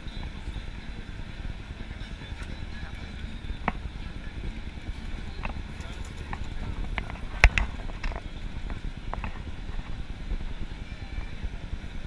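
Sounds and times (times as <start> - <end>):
people's voices: 0.0 - 12.0
traffic and wind rumble: 0.0 - 12.0.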